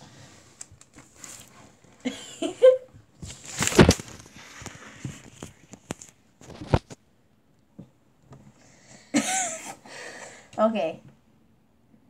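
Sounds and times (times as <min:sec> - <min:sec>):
girl laughing breathily: 0:02.0 - 0:02.9, 0:09.0 - 0:10.4
soft breathing: 0:09.8 - 0:10.6.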